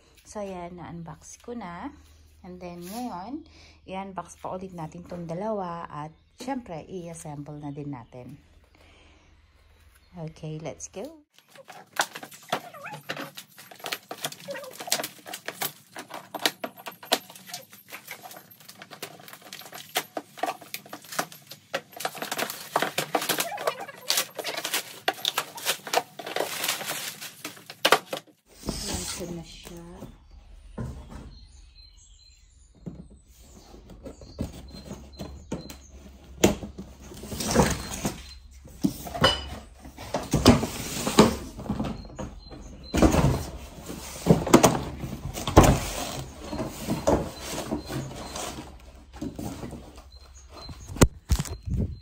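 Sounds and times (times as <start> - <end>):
plastic wrapping crinkling: 11.3 - 28.4
cardboard boxes handled: 11.4 - 30.1, 32.8 - 52.0.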